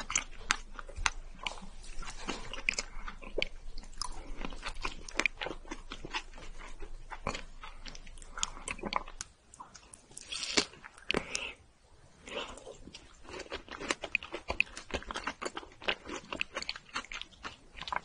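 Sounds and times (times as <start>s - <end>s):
sticky wet eating sounds: 0.0s - 11.6s, 12.2s - 18.0s.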